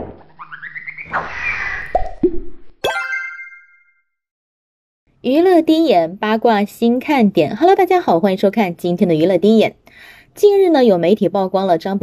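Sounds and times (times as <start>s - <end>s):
bright ringing chime: 2.9s - 4.0s.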